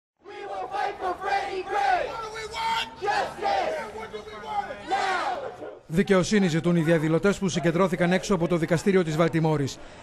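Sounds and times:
crowd of protesters shouting: 0.2s - 5.9s.

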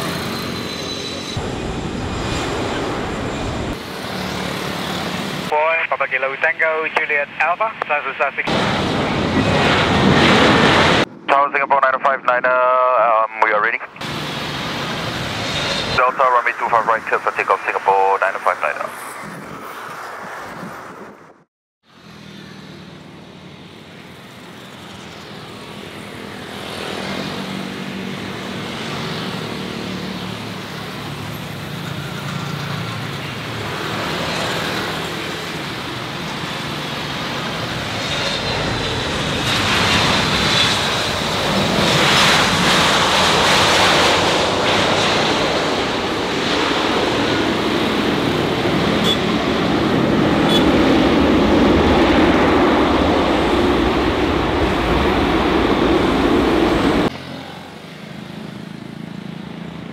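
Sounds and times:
jet airliner landing: 0.0s - 21.4s, 22.0s - 59.3s.

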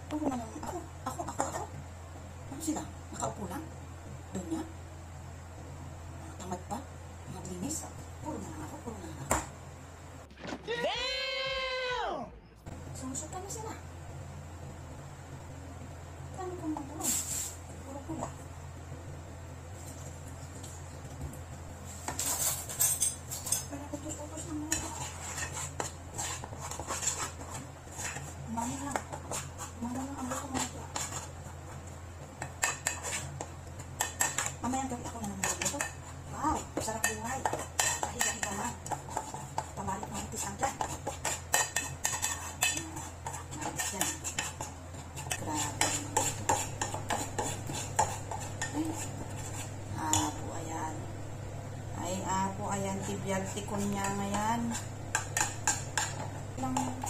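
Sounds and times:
steady low hum: 11.2s - 57.0s
utensils and dishes clattering: 22.2s - 23.8s.

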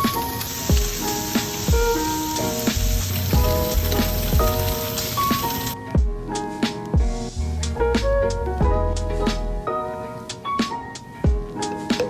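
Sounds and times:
tofu sizzling in oil: 0.0s - 5.8s
background music: 0.0s - 12.0s.

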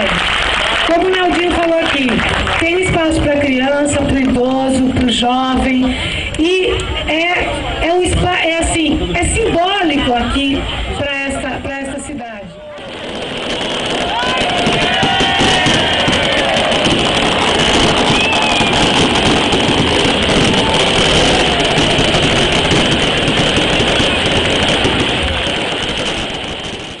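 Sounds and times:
crowd applauding and cheering: 0.0s - 3.2s, 12.8s - 26.0s
voices shouting: 12.6s - 24.3s.

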